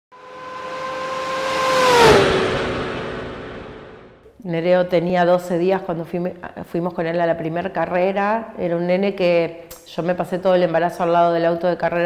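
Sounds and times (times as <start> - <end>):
racing engine passing by: 0.1 - 4.2.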